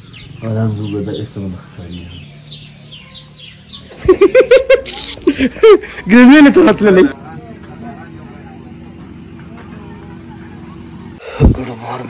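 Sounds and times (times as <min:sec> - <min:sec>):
small birds chirping faintly: 0:00.0 - 0:06.4
rapid pitched bird calls: 0:00.0 - 0:06.5.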